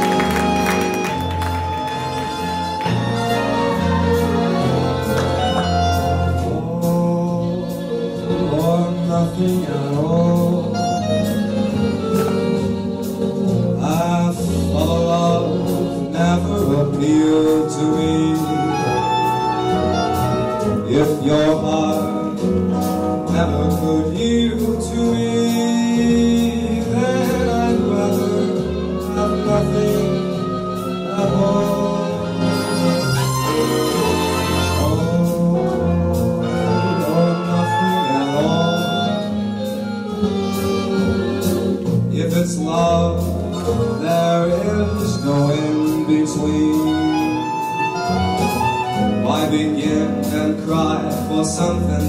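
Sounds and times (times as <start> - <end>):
instrumental accompaniment: 0.0 - 52.0.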